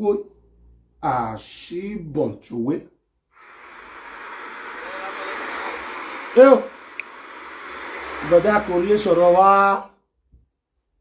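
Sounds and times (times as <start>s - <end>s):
steady background hiss: 3.4s - 9.8s.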